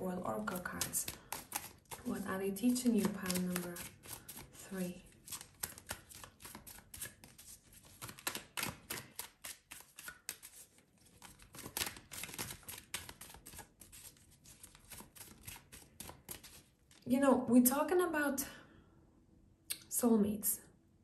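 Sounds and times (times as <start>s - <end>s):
cards being shuffled: 0.4s - 17.0s.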